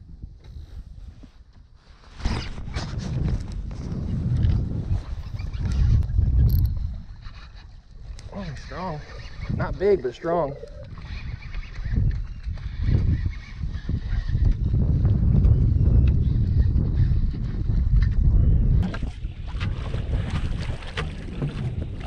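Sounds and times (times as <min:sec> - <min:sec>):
wind rumble on microphone: 0:00.0 - 0:22.0
clothing rubbing on microphone: 0:00.4 - 0:07.7.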